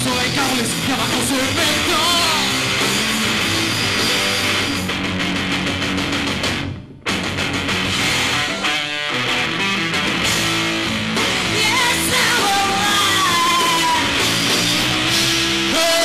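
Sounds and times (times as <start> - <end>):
electric guitar: 0.0 - 16.0
rock band playing: 0.0 - 16.0.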